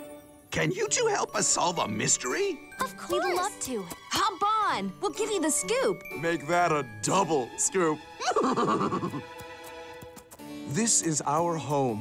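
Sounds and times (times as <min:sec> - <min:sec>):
light background music: 0:00.0 - 0:12.0.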